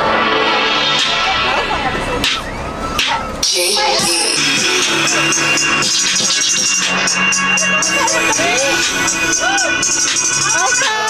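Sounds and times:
music with steady beat: 0.0 - 11.0
rapid high percussion: 0.0 - 11.0.

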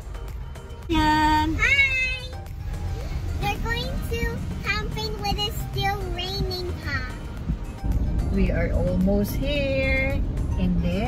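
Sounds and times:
car interior rumble: 0.0 - 11.0.

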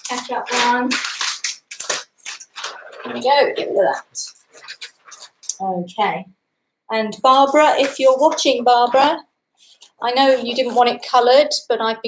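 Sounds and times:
large paper sheets rustling: 0.0 - 5.5, 7.3 - 11.3.

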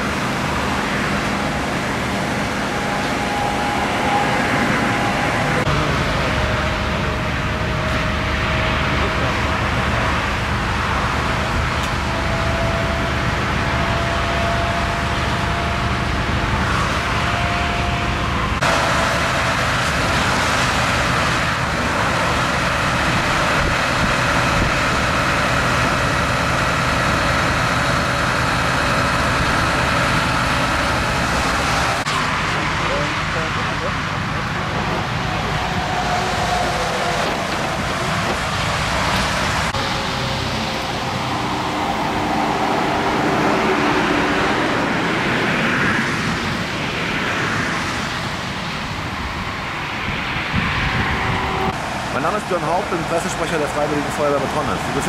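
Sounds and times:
motorway traffic rumble: 0.0 - 55.0.

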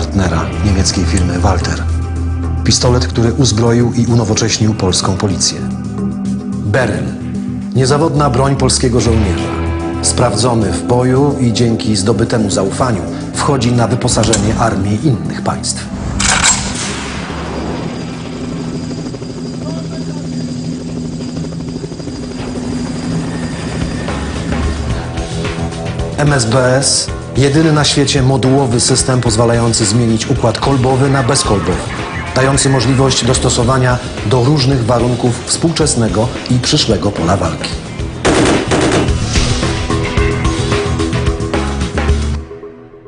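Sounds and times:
soundtrack music: 0.0 - 20.3, 21.8 - 43.0
helicopter drone: 15.9 - 42.3
automatic rifle fire: 38.2 - 39.2.

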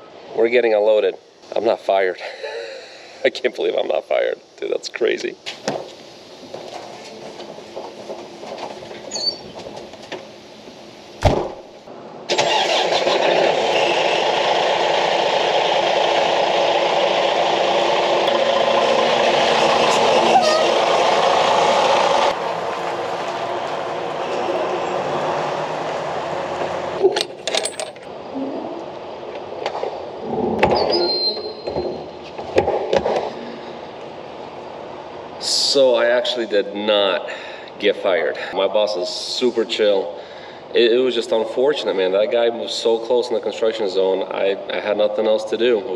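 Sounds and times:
thump: 11.2 - 11.6
diesel truck engine running: 12.4 - 27.0.

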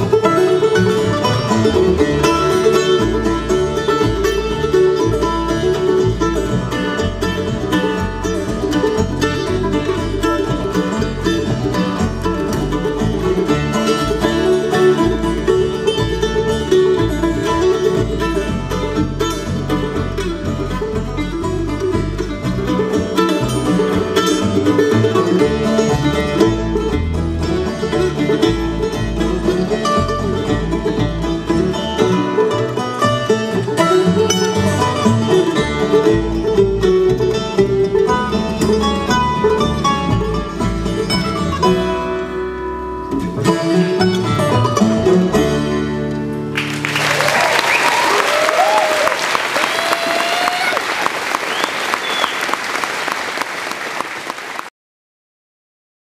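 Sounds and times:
bluegrass string band playing: 0.0 - 54.6
audience applause and cheering: 46.5 - 54.7.

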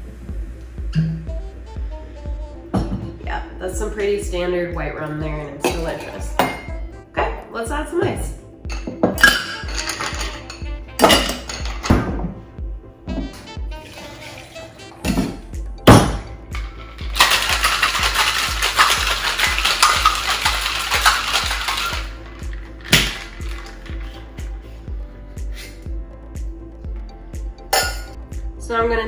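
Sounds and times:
background music: 0.0 - 29.0
ice clinking into metal tin: 16.5 - 24.2
ice rattling in cocktail shaker: 16.5 - 24.3.

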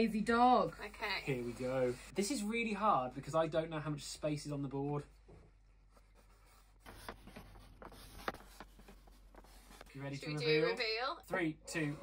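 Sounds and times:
pens scratching on chalkboards: 6.0 - 10.3.

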